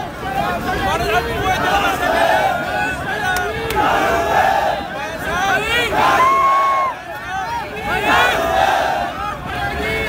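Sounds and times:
large crowd shouting: 0.0s - 10.0s.

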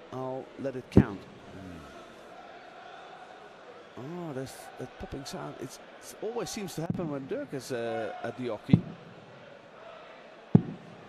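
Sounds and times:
arena crowd murmur: 0.0s - 11.0s.

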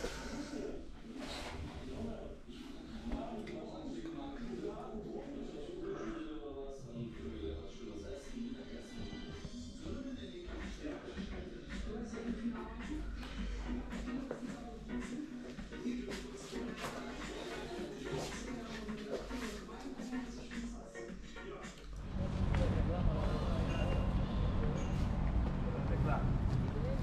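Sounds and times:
faint indistinct speech: 0.0s - 27.0s
voice in music: 6.8s - 25.0s
music with steady beat: 8.9s - 22.0s.

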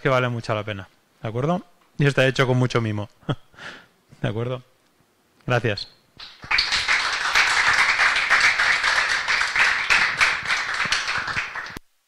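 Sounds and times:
audience applauding: 6.2s - 11.8s.

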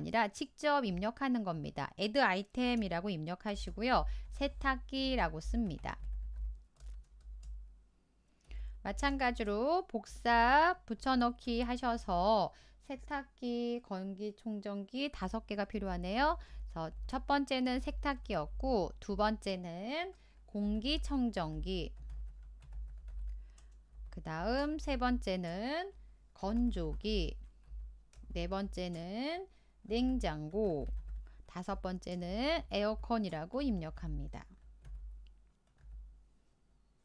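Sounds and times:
steady low hum: 2.4s - 13.4s, 15.2s - 37.0s
keyboard typing: 2.6s - 7.7s, 20.0s - 29.2s, 30.1s - 32.3s, 34.2s - 36.1s
keyboard keystrokes: 6.0s - 7.6s.

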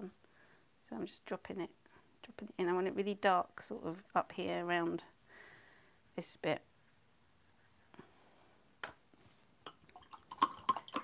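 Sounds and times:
paintbrush and metal tins clinking: 9.6s - 11.0s.

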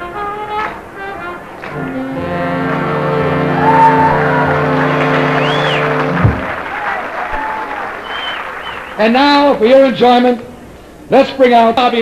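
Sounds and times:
audience applauding: 1.4s - 9.2s.

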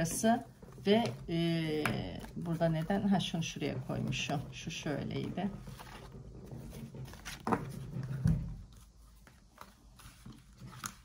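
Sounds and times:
cards tapping and rustling: 0.0s - 11.0s.

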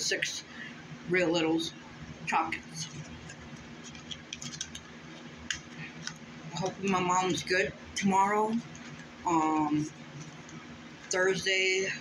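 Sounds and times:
crisp clicks and crinkles: 2.6s - 7.0s, 8.5s - 9.2s, 9.9s - 11.2s
fingers picking at packet: 2.8s - 6.2s.

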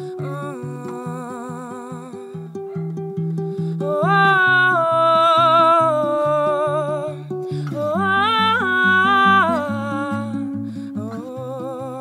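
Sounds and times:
fingerpicked acoustic guitar: 0.0s - 12.0s
woman singing wordless melody: 0.0s - 12.0s.

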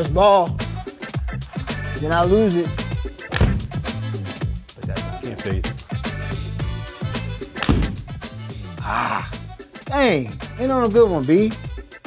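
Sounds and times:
background music with bass line: 0.0s - 12.0s
golf club striking ball: 3.3s - 3.9s, 7.6s - 8.2s.

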